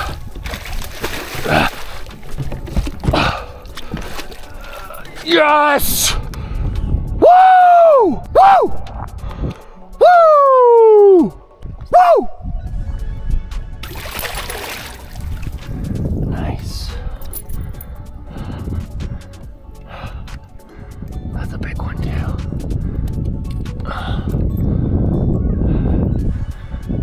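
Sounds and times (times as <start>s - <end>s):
fish splashing in water: 0.0s - 4.8s, 13.8s - 15.6s
man whooping: 7.2s - 8.8s, 10.0s - 12.3s.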